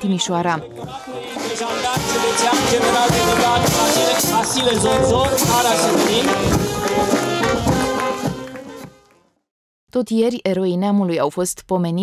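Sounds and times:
brass band playing a march: 0:00.9 - 0:09.2.

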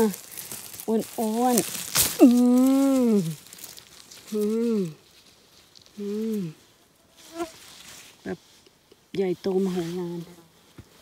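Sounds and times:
woman humming: 0:02.2 - 0:03.4, 0:04.3 - 0:05.0, 0:06.0 - 0:06.6.

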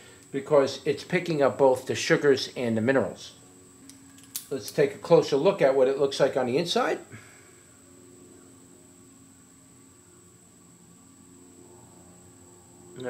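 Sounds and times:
faint hum: 0:00.0 - 0:13.0
thin high whine: 0:00.0 - 0:13.0.

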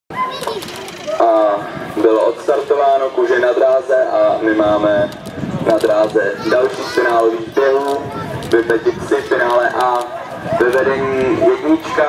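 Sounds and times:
people's voices: 0:00.1 - 0:12.0.

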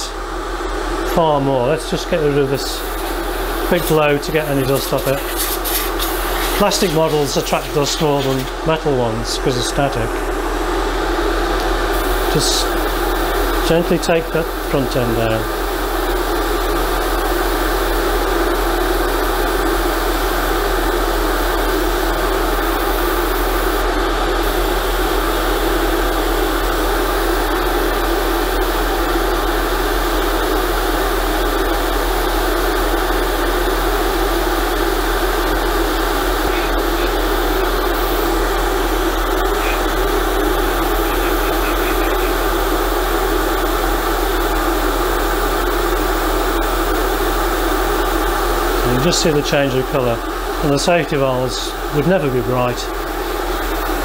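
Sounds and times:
airbrush spraying hiss: 0:02.7 - 0:08.5, 0:11.9 - 0:13.6, 0:21.6 - 0:23.8, 0:24.4 - 0:28.5, 0:34.8 - 0:44.1.

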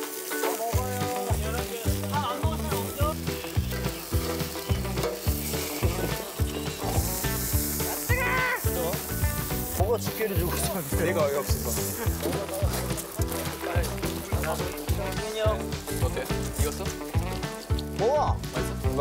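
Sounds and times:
background music with beat: 0:00.0 - 0:19.0
meat sizzling on grill: 0:00.0 - 0:19.0.

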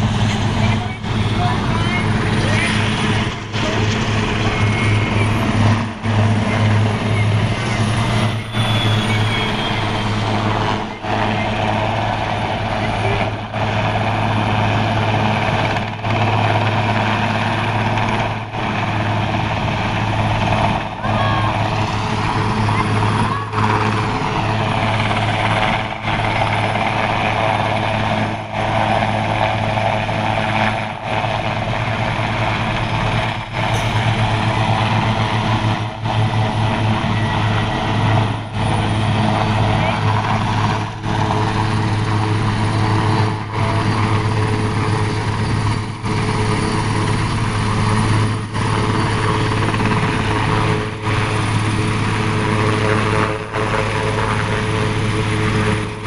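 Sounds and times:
helicopter rotor and turbine drone: 0:00.0 - 0:56.0.

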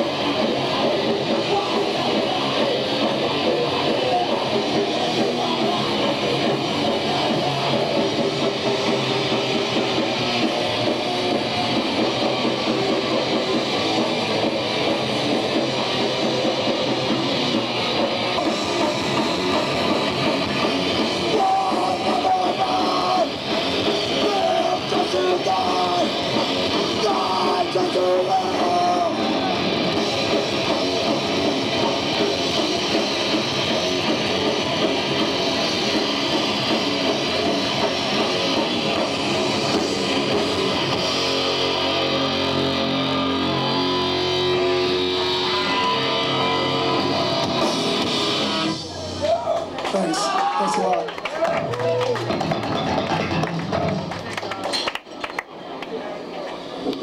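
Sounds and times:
live heavy metal band: 0:00.0 - 0:54.5.

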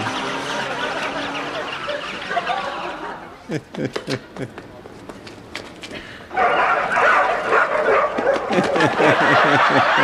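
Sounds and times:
puppies yapping and barking: 0:00.1 - 0:03.2, 0:06.4 - 0:08.8
man chuckling: 0:03.4 - 0:04.7, 0:08.5 - 0:10.0.

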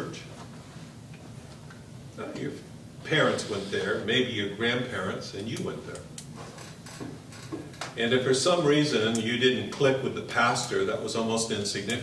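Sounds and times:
man speaking: 0:00.0 - 0:00.3, 0:02.2 - 0:06.1, 0:08.0 - 0:12.0.

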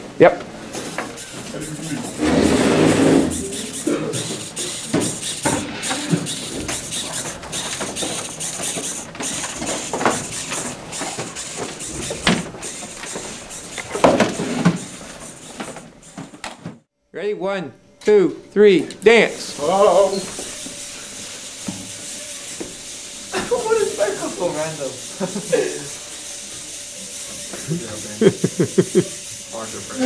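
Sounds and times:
people talking indistinctly: 0:01.2 - 0:05.1, 0:17.2 - 0:20.6, 0:23.3 - 0:26.0.

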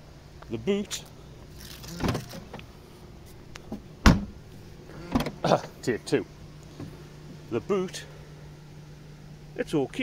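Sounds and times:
car boot latch clunk: 0:03.7 - 0:04.4, 0:05.1 - 0:05.4.

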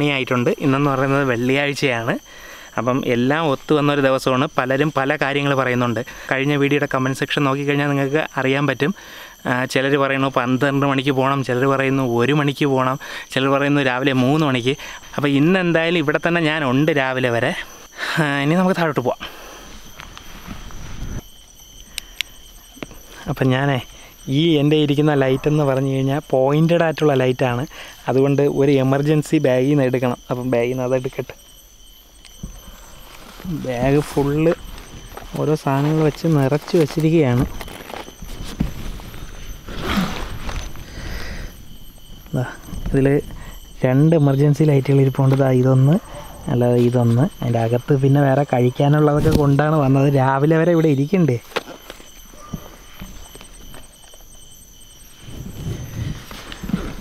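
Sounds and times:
crickets chirping: 0:00.0 - 0:57.0
man speaking: 0:23.3 - 0:31.4, 0:33.4 - 0:37.6, 0:42.3 - 0:51.5
gear rustling in a bag: 0:32.2 - 0:42.2.

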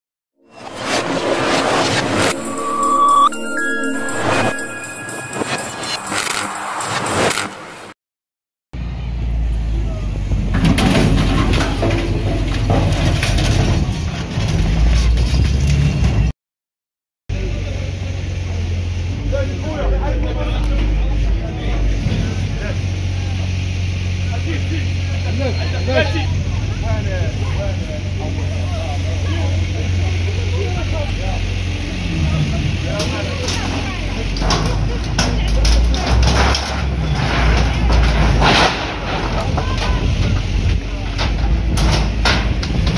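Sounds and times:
diesel engine low rumble: 0:08.8 - 0:16.3, 0:17.3 - 0:42.9.

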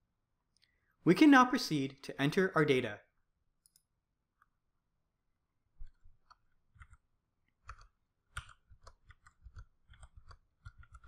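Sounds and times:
keyboard and mouse clicks: 0:03.6 - 0:04.6, 0:05.8 - 0:11.0.

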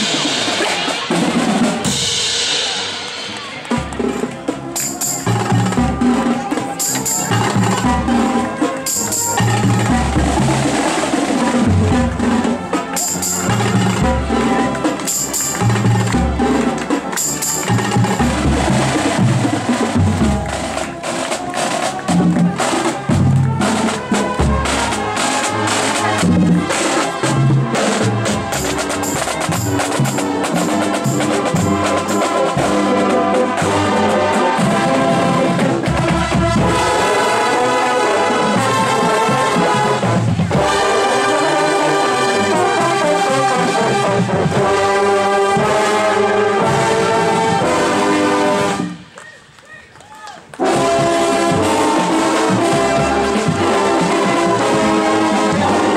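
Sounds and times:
marching drums playing cadence: 0:00.0 - 0:49.5, 0:50.5 - 0:55.9
brass section sustained chords: 0:05.3 - 0:49.1, 0:50.6 - 0:55.9.

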